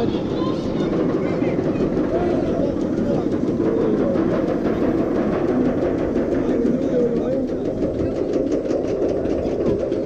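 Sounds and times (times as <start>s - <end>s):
coaster train rumbling: 0.0s - 10.0s.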